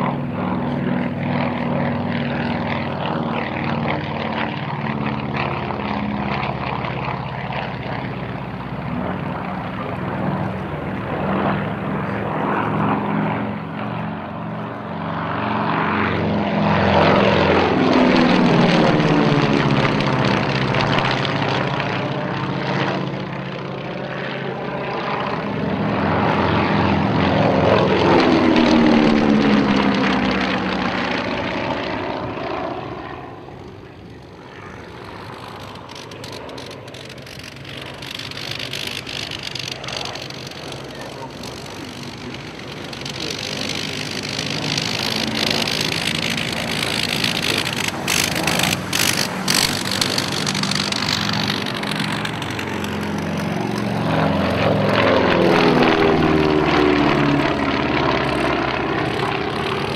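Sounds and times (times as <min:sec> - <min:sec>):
propeller aircraft engines droning: 0:00.0 - 0:59.9.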